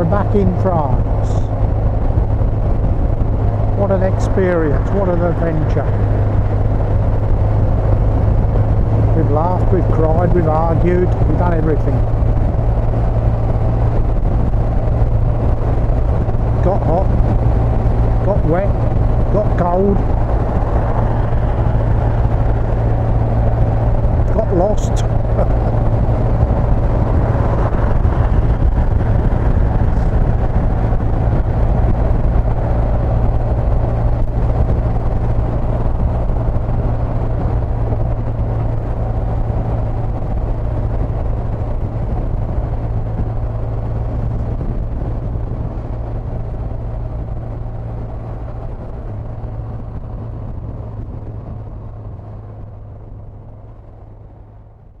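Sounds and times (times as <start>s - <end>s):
motorcycle engine hum: 0.0s - 55.0s
road noise: 0.0s - 55.0s.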